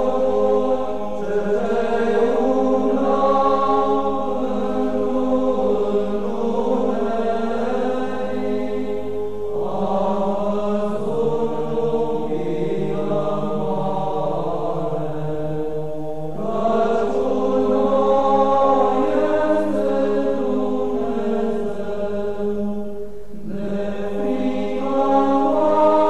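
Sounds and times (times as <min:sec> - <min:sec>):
voices chanting sustained notes: 0:00.0 - 0:26.0.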